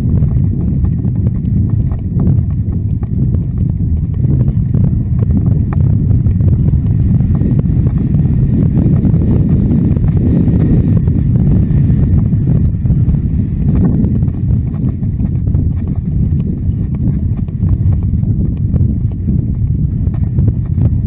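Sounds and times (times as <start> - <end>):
horse hoofbeats on wet sand: 0.0 - 21.0
wind rumble on microphone: 0.0 - 21.0.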